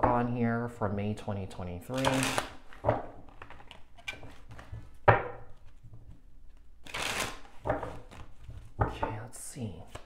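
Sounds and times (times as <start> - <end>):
cards clicking and rustling: 1.9 - 5.0, 6.5 - 8.7.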